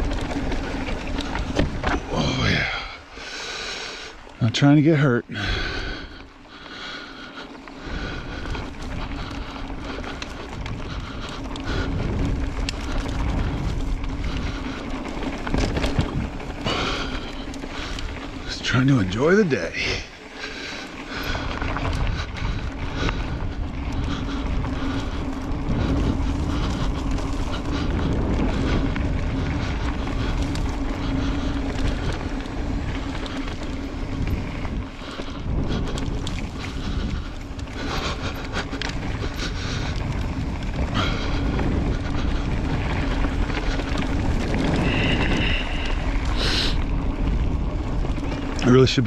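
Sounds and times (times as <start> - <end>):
bike knocks and rattles: 0.0 - 2.2
wind buffeting microphone: 0.0 - 3.2, 5.3 - 49.0.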